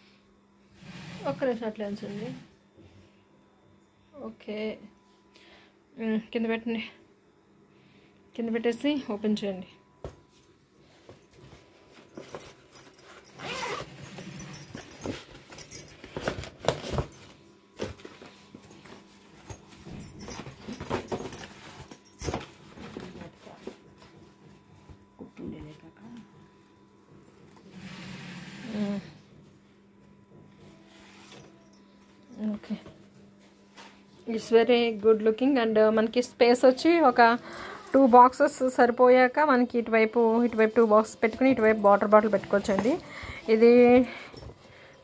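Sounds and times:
faint steady hum: 0.0 - 45.0
stiff fabric bag rustling: 12.1 - 15.1
bangles jangling: 12.1 - 16.0, 41.6 - 45.0.

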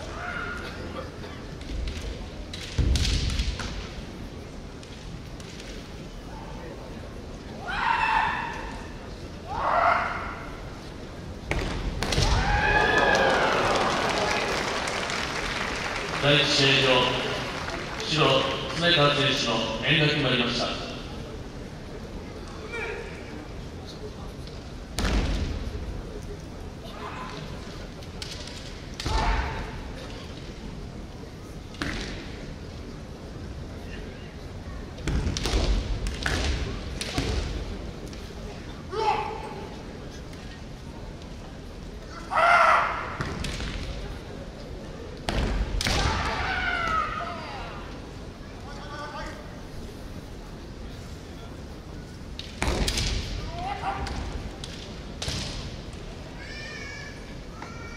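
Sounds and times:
low noise of large hall: 0.0 - 57.9
loud high-pitched shout: 7.6 - 8.8, 42.2 - 43.2
crowd applause: 12.7 - 18.8
person shouting kiai: 29.1 - 29.8, 38.9 - 39.6, 42.2 - 43.2, 53.5 - 54.1.

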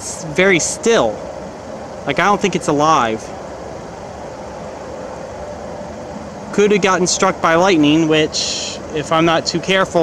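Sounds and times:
faint hum: 0.0 - 10.0
low background rumble: 0.0 - 10.0.

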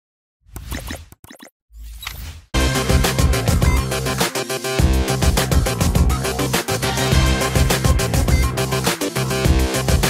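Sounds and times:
electronic music with heavy bass: 2.6 - 10.0.

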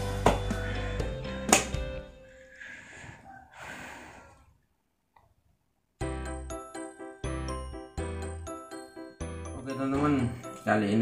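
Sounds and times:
breathy exhale: 2.2 - 4.6.

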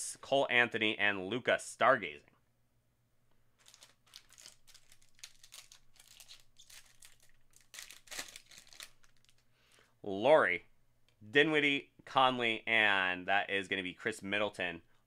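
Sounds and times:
foil wrapper crinkling: 3.6 - 9.4.

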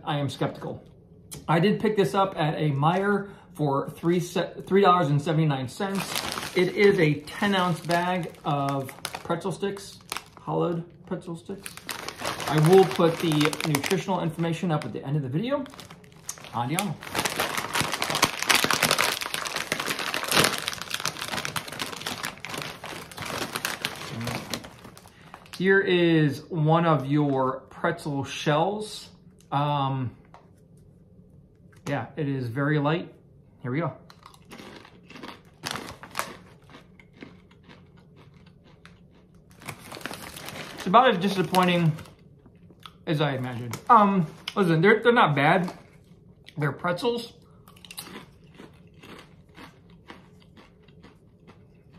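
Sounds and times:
plastic bag crinkling: 5.7 - 25.8, 34.2 - 37.8, 38.4 - 42.2
pretzel crunching: 5.8 - 14.9, 15.6 - 25.7, 34.1 - 42.2, 47.7 - 51.9
chewing with crisp crackles: 34.1 - 40.9, 42.0 - 43.0, 47.4 - 51.9.

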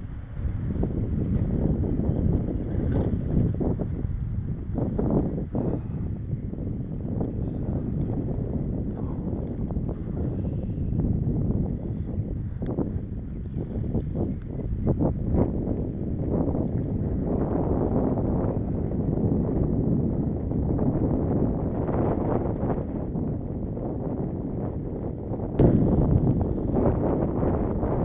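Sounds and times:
dull road rumble: 0.0 - 28.0
wind rumbling on microphone: 0.0 - 28.0.

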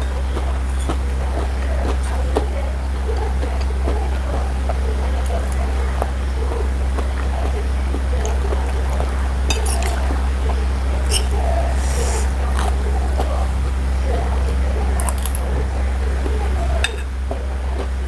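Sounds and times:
mouth and chewing sounds: 0.0 - 18.0
steady low hum: 0.0 - 18.0.

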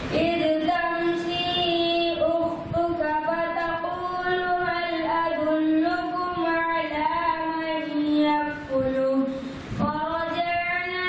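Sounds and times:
boy chanting into a microphone: 0.0 - 11.0.

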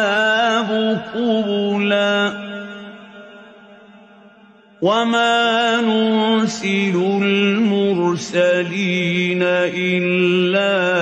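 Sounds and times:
man chanting recitation: 0.0 - 3.0, 4.8 - 11.0.

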